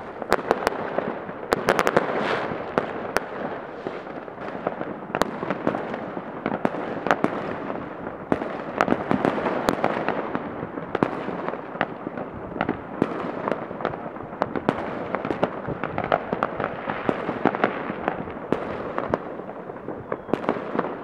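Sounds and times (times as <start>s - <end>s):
fireworks banging: 0.0s - 11.4s
firecrackers crackling: 0.0s - 21.0s.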